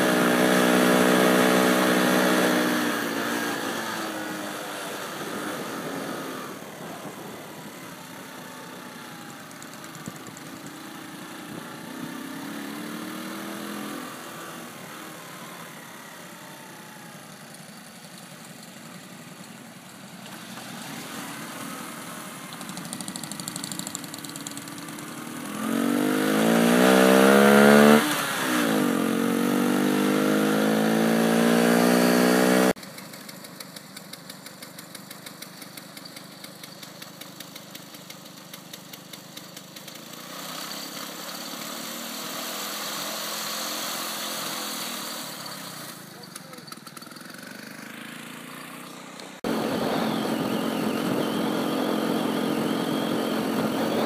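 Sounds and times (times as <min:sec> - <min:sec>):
small motorcycle engine accelerating: 0:00.0 - 0:54.0
engine idling with ticking: 0:09.2 - 0:11.0, 0:17.2 - 0:20.3, 0:22.5 - 0:25.2, 0:32.8 - 0:40.4, 0:46.0 - 0:48.0.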